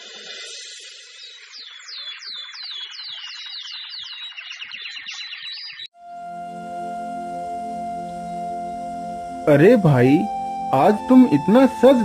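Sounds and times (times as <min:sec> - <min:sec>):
descending whistled bird chirps: 0:00.0 - 0:05.9
held musical drone: 0:06.0 - 0:12.0.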